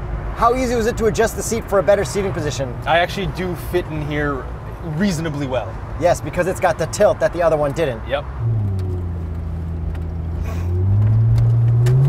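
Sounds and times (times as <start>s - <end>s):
road noise: 0.0s - 12.0s
car engine revving: 5.8s - 12.0s.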